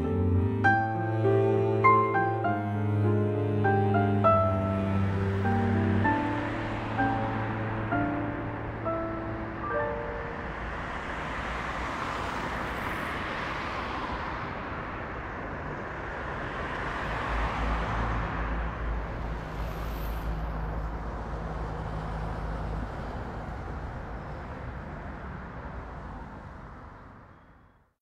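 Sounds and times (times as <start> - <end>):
soft music: 0.0 - 11.0
street traffic road noise: 0.0 - 27.9.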